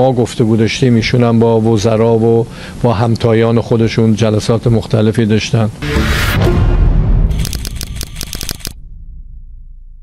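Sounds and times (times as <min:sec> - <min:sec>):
low hum: 0:05.8 - 0:10.0
fast run of sharp clicks: 0:07.3 - 0:08.8.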